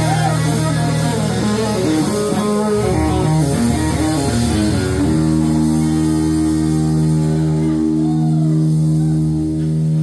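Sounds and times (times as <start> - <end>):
electric bass: 0.0 - 10.0
electric guitar bending notes: 0.0 - 10.0.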